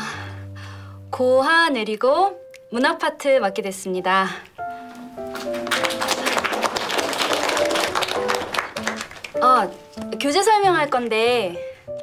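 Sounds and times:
background music with held notes: 0.0s - 12.0s
students clapping: 5.3s - 9.4s.

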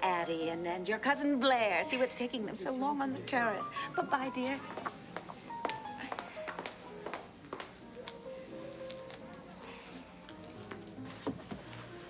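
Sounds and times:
soft background music: 0.0s - 12.0s
high heels on hard floor: 4.5s - 7.8s.

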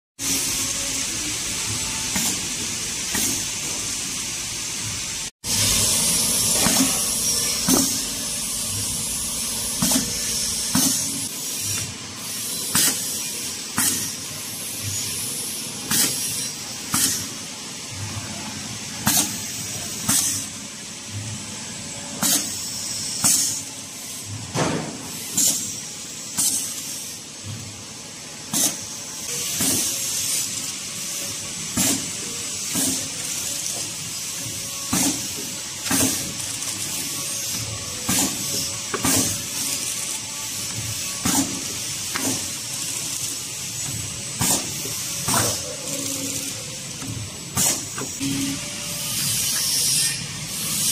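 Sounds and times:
pneumatic air hisses: 0.2s - 4.2s, 5.5s - 18.2s, 18.9s - 21.3s, 22.0s - 50.9s
packing machine hum: 4.9s - 49.6s.

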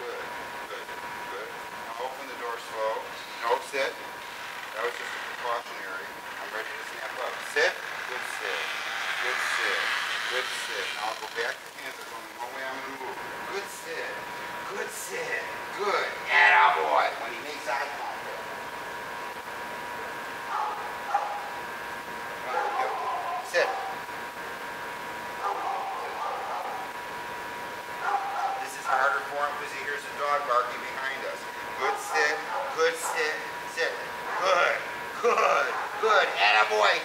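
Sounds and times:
faint high hum: 0.0s - 37.0s.

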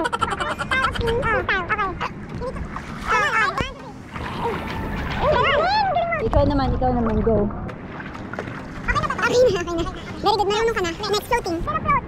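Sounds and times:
water splashing from swimming: 0.8s - 11.0s.

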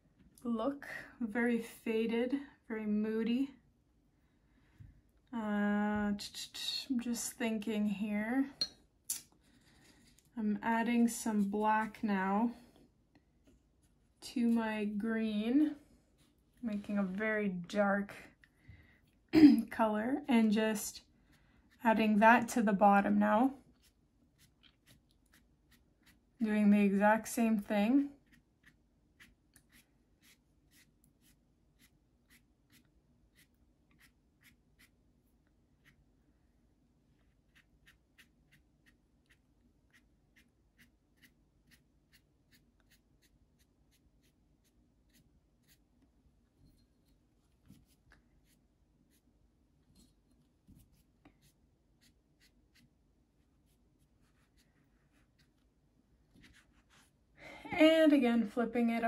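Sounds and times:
low room hum: 0.0s - 59.0s.

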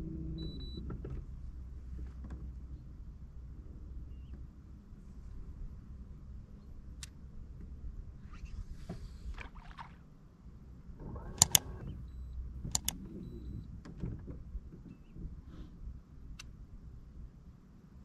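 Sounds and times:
low steady rumble: 10.8s - 13.7s
mouse clicks: 11.2s - 12.1s, 12.7s - 13.2s.

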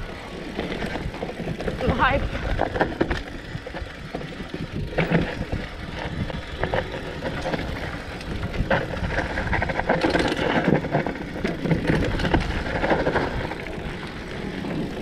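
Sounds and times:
bike rattling: 0.0s - 15.0s
bike tyres rolling over dirt: 0.0s - 15.0s.

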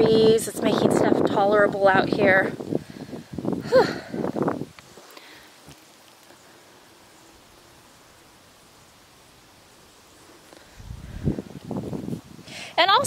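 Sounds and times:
breeze rustling plants: 0.0s - 13.0s.

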